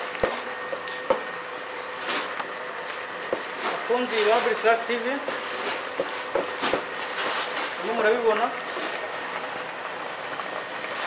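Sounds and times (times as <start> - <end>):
water boiling in a pot: 0.0 - 11.0.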